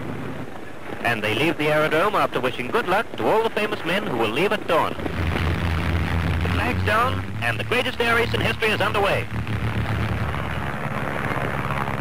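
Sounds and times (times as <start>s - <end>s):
propeller aircraft engines droning: 0.0s - 12.0s.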